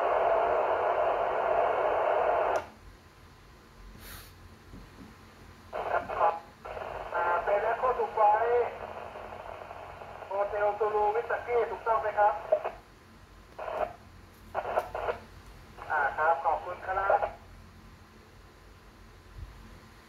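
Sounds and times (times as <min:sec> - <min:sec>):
man talking over radio speaker: 0:05.8 - 0:08.9, 0:10.2 - 0:12.8, 0:15.8 - 0:17.4.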